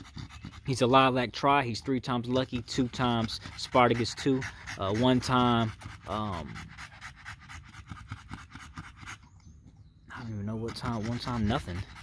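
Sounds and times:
dog breathing quickly: 0.0 - 1.0, 2.2 - 9.4, 10.5 - 12.0.

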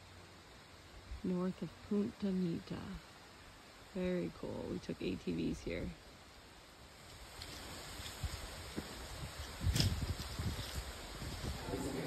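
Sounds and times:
faint hiss: 0.0 - 12.0
wind rumbling on microphone: 6.9 - 12.0.

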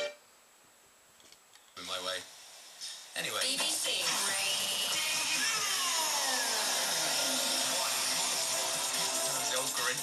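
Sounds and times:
radio static hiss: 1.8 - 10.0.

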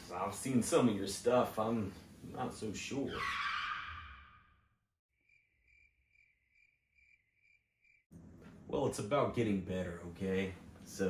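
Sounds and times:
cricket chirping: 5.2 - 8.1.

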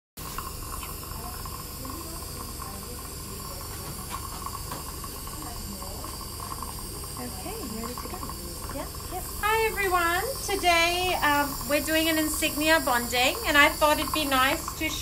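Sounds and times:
dental suction hissing: 0.2 - 15.0.

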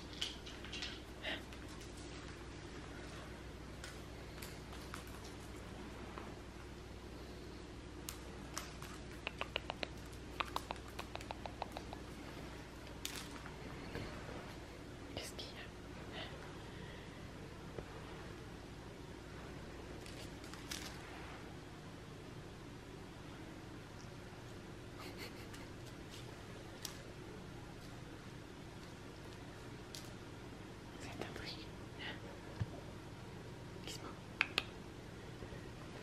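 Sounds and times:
faint whispering: 15.1 - 16.5, 30.9 - 32.4, 33.8 - 34.3.

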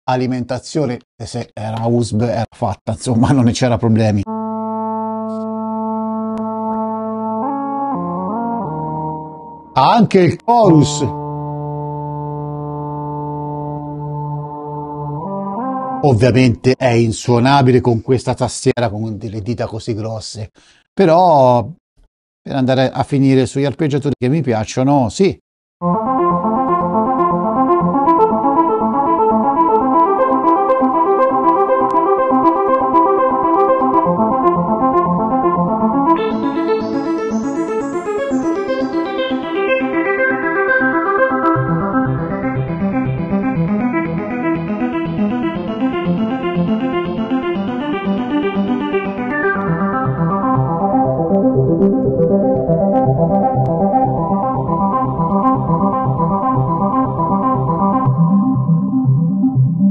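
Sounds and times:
synthesizer arpeggio: 4.2 - 16.2, 25.8 - 59.9.

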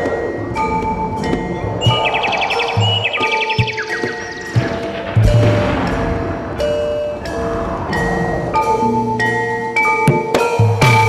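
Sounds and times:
low drum strokes: 4.6 - 9.8.

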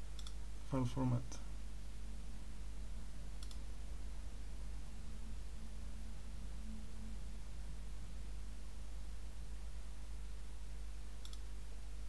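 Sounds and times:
low hum and hiss: 0.0 - 12.0
computer mouse clicks: 0.1 - 0.4, 3.4 - 3.6, 11.2 - 11.5.

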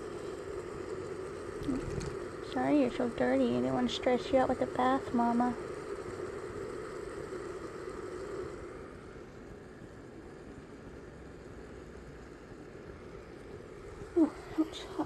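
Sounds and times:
cat purring: 1.6 - 5.6.

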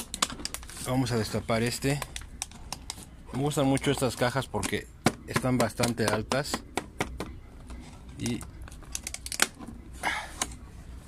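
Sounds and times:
plastic box clicks: 4.6 - 7.3.

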